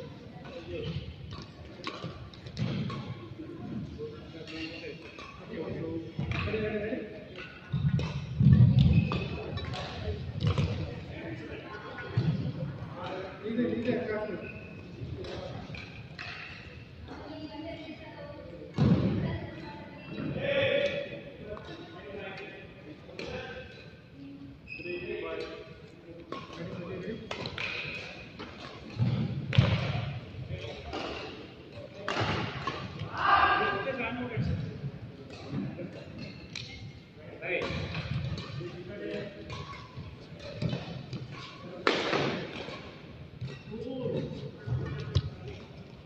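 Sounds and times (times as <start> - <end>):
racket hitting shuttlecock: 27.3 - 33.0, 37.6 - 45.6.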